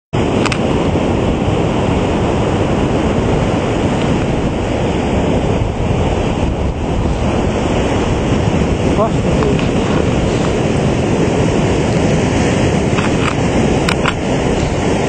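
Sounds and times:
surf breaking: 0.2s - 15.0s
wind blowing across microphone: 0.2s - 15.0s.

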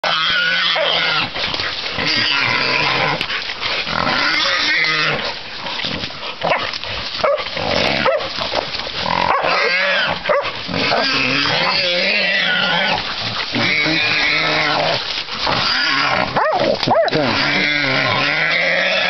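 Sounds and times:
pig squealing: 0.0s - 5.4s, 9.0s - 19.0s
dogs growling: 0.1s - 19.0s.

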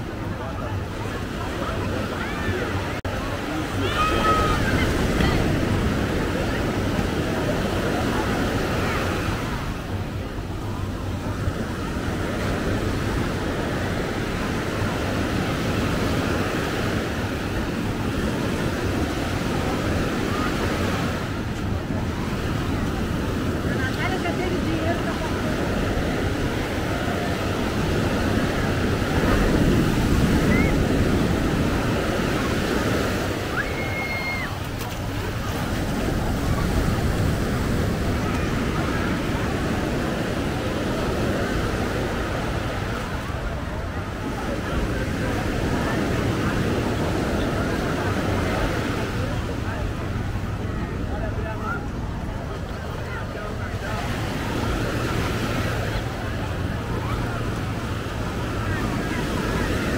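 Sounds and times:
chatter of beachgoers: 0.0s - 59.9s
waves breaking on beach: 0.0s - 59.9s.

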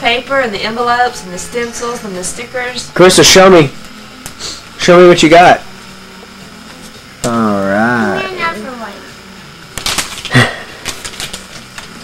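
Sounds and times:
person's drawn-out vocal sound: 7.2s - 8.5s
clicks and crackles of paper: 9.7s - 12.0s.

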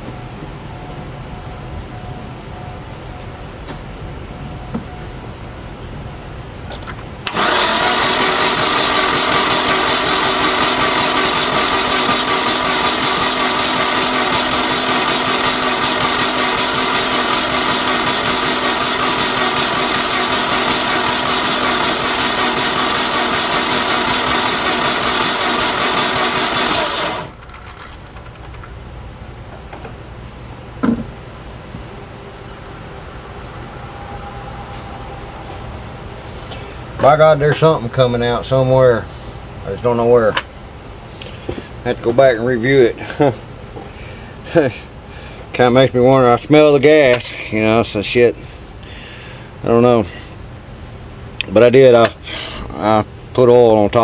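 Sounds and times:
crickets chirping: 0.0s - 54.0s
starter motor cranking engine: 6.8s - 28.7s, 39.6s - 50.2s
short knock: 30.8s - 31.1s.

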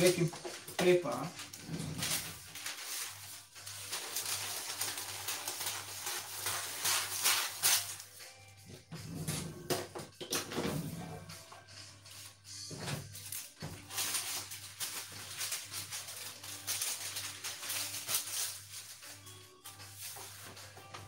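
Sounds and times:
baking paper rustling and crinkling: 0.0s - 9.6s, 12.0s - 21.0s.

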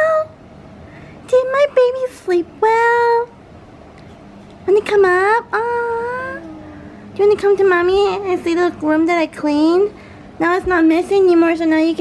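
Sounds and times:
toddler babbling: 5.6s - 6.8s.

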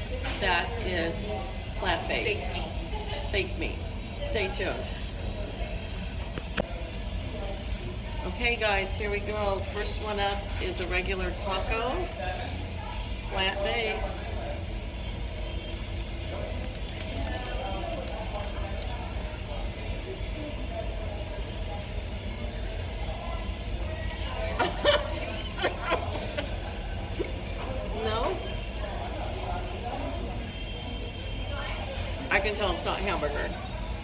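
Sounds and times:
faint voices: 0.0s - 34.0s.

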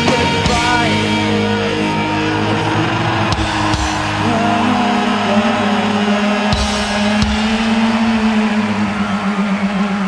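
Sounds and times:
rock band droning note: 0.0s - 9.3s.

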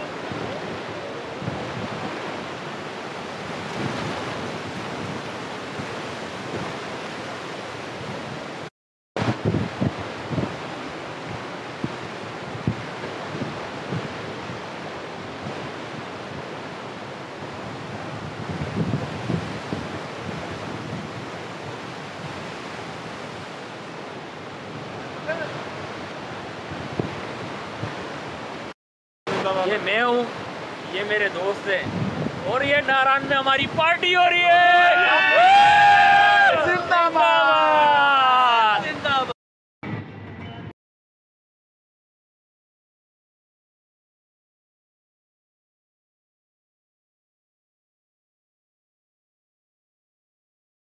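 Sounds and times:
wind buffeting microphone: 0.0s - 28.6s, 31.7s - 32.8s.

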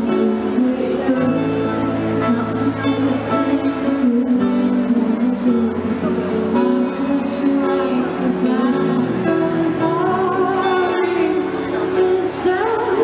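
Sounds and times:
band playing slow ballad: 0.0s - 13.0s
woman singing: 0.0s - 13.0s.

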